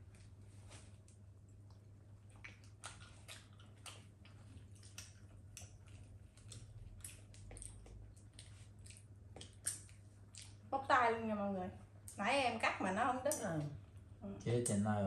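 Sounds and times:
chewing: 0.0 - 10.6
low steady hum: 0.0 - 15.0.

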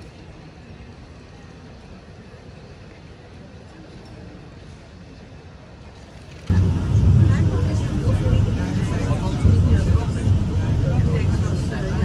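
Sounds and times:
faint street background: 0.0 - 12.0
vehicle low rumble: 6.2 - 12.0
people's voices: 6.5 - 12.0.

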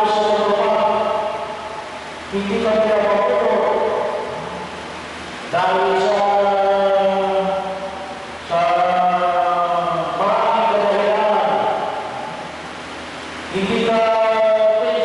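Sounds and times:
man chanting into a microphone: 0.0 - 1.5, 2.3 - 4.6, 5.5 - 7.8, 8.4 - 12.2, 13.5 - 15.0.

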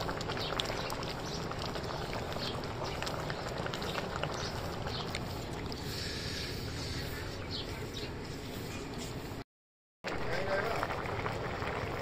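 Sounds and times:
pot bubbling and simmering: 0.0 - 9.4, 10.0 - 12.0.

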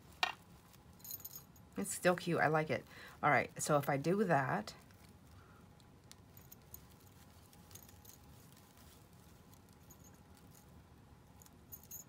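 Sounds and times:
mesh bag rustling: 6.0 - 10.7
small bell jingling: 11.4 - 12.0.

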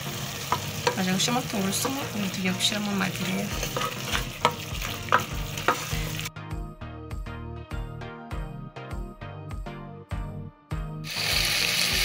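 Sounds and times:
vegetables sizzling in metal pot: 0.0 - 6.3, 11.1 - 12.0
music: 0.0 - 12.0
wooden spoon stirring: 3.1 - 6.0.

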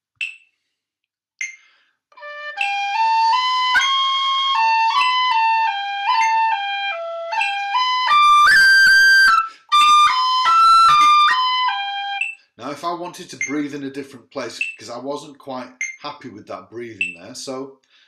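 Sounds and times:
metronome ticking: 0.2 - 0.5, 1.4 - 1.8, 2.5 - 12.5, 13.2 - 13.8, 14.5 - 15.0, 15.7 - 16.2, 17.0 - 17.5
tin whistle playing a jig: 2.2 - 12.5.

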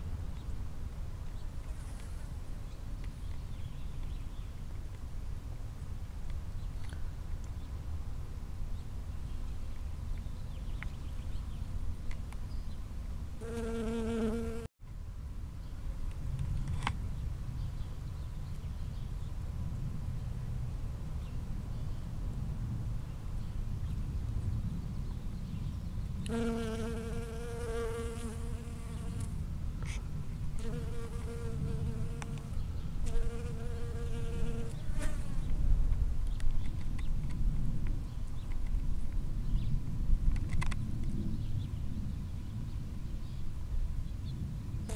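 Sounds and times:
bee buzzing in flight: 13.4 - 14.7, 26.3 - 29.3
bee wing buzz: 13.4 - 14.7.

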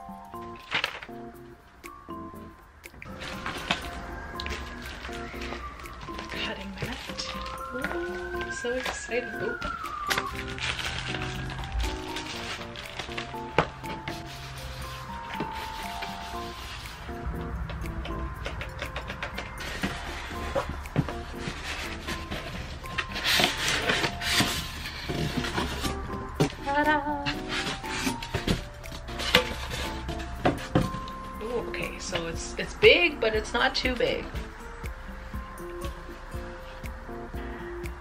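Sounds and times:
soft background music: 0.0 - 38.0
cardboard box and foam rustling: 3.1 - 16.9, 18.6 - 32.3.

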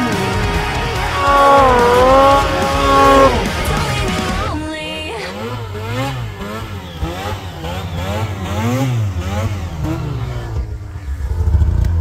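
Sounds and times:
snowmobile engine revving: 0.0 - 4.5, 5.2 - 10.6.

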